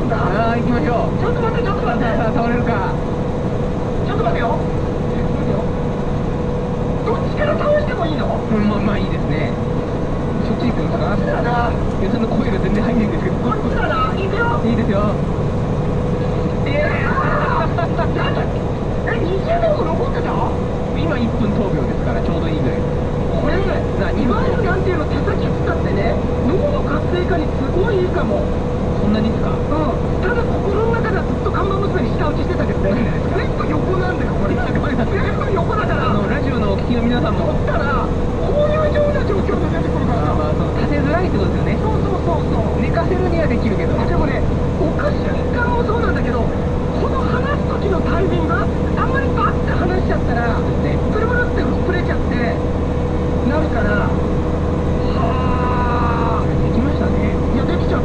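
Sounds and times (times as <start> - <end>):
indistinct talk: 0.0 - 58.0
truck diesel engine droning: 0.0 - 58.0.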